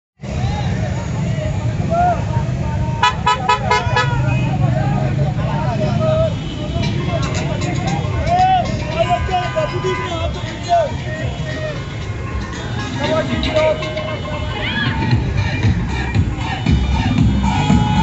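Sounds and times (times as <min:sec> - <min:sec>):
engines rumbling: 0:00.2 - 0:18.0
crowd shouting: 0:00.3 - 0:15.4, 0:16.5 - 0:18.0
car horns honking: 0:03.0 - 0:04.7, 0:06.0 - 0:14.6.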